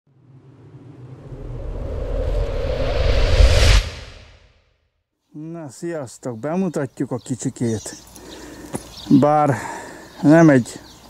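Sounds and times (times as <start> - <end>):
low rumbling logo intro effect: 0.1 - 4.9.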